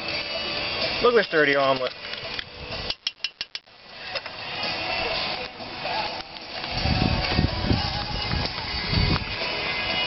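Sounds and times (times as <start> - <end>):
steady noisy hiss: 0.0 - 10.0.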